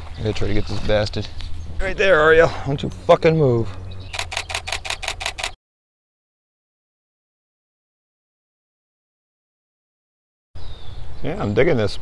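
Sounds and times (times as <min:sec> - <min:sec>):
camera shutter burst: 0:04.1 - 0:05.6.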